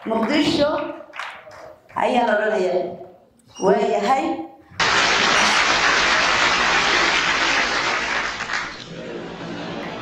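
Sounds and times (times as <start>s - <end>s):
audience applauding: 4.8s - 10.0s.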